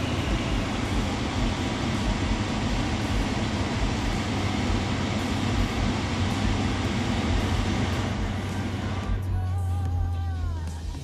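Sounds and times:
fan blower air rush: 0:00.0 - 0:11.0.

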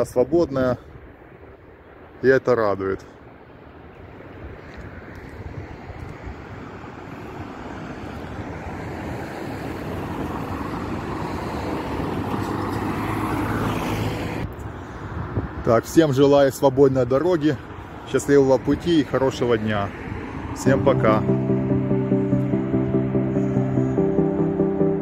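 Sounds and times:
road traffic rush: 0:00.0 - 0:25.0.

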